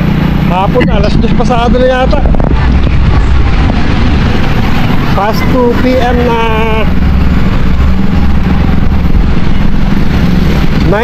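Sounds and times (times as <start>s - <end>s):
motorcycle engine running: 0.0s - 11.0s
wind buffeting microphone: 0.0s - 11.0s.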